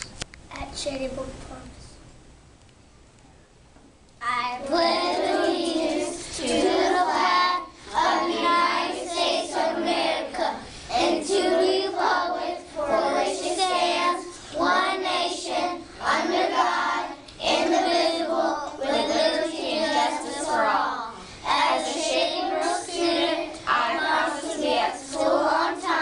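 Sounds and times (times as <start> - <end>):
children reciting together: 4.2 - 26.0.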